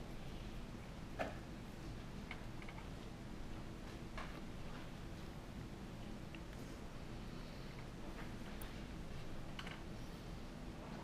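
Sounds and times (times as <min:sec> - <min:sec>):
faint irregular clicks: 0:02.2 - 0:05.4, 0:06.2 - 0:06.8, 0:07.7 - 0:10.2.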